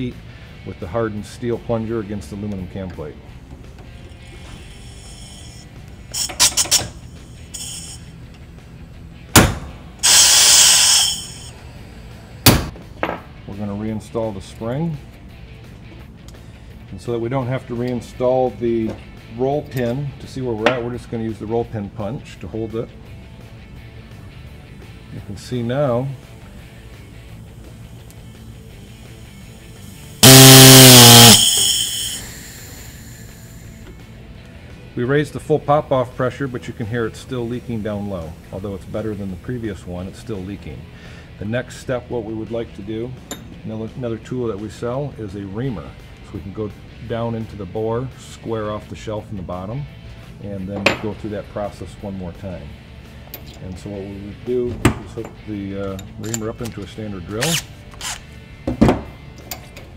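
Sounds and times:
faint air hiss: 4.4s - 8.2s, 10.0s - 11.6s
valve popping with rushing air: 6.2s - 6.9s, 7.5s - 8.0s, 10.0s - 11.5s, 30.2s - 33.1s
hammer striking metal punch: 9.3s - 9.8s, 12.4s - 13.2s
compressed air rushing out: 10.0s - 11.5s.

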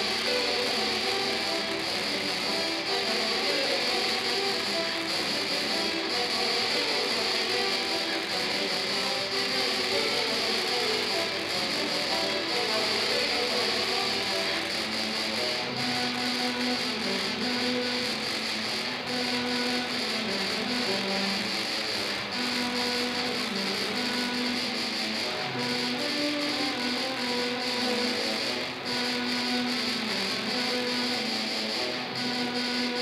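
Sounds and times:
tuba and euphonium quartet: 0.0s - 33.0s.

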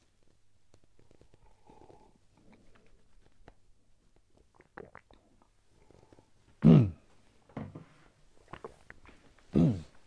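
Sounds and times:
person sipping from mug: 1.0s - 2.7s, 4.3s - 6.3s, 8.4s - 10.0s
mouth clicks: 4.2s - 6.2s
person swallowing: 4.4s - 5.5s, 8.4s - 10.0s.

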